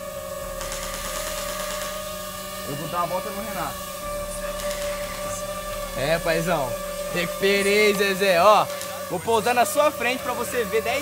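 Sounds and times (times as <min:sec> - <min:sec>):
drone propellers whining: 0:00.0 - 0:11.0.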